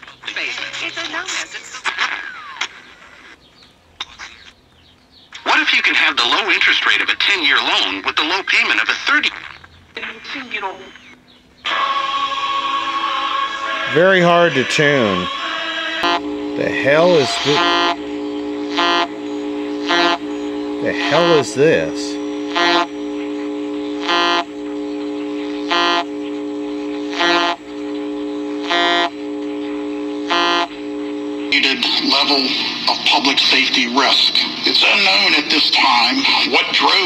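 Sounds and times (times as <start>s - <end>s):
radio tuning across the dial: 5.4s - 37.0s.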